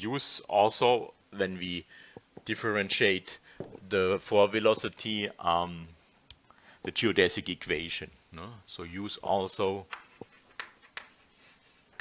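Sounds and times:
chalk tapping on chalkboard: 9.9 - 12.0.

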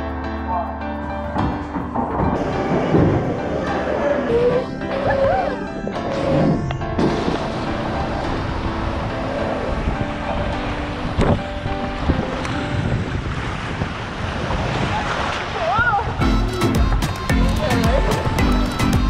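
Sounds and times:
water rushing and splashing: 2.0 - 19.0.

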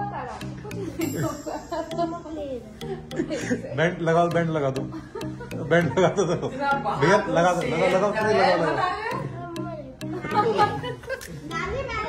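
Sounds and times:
adults talking: 0.0 - 12.0
child talking: 2.0 - 2.9, 9.2 - 10.2, 11.4 - 12.0.

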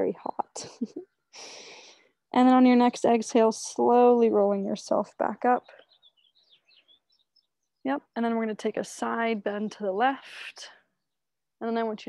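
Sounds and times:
faint bird chirping: 4.2 - 12.0.

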